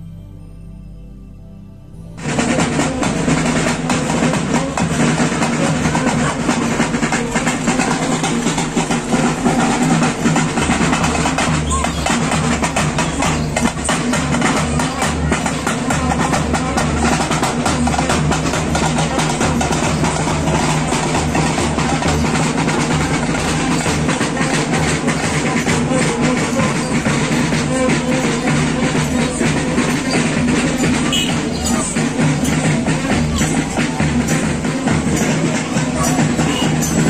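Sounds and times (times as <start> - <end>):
barrel drums beaten fast: 2.2 - 37.0.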